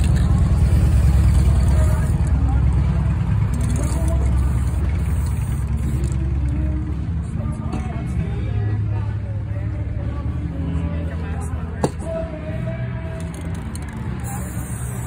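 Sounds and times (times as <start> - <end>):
spray paint can hissing: 0.0 - 2.4, 3.5 - 6.5, 13.3 - 15.0.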